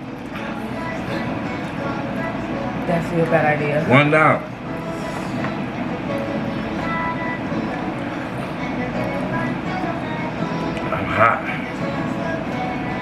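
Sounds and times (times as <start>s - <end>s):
faint music: 0.0s - 13.0s
room noise: 0.0s - 13.0s
faint voices: 7.6s - 13.0s.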